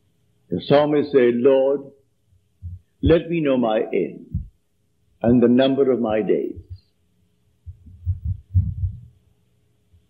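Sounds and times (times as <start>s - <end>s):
faint steady hum: 0.0s - 10.0s
low dull thumps: 2.6s - 3.2s, 4.3s - 4.6s, 6.5s - 6.8s, 7.6s - 9.2s.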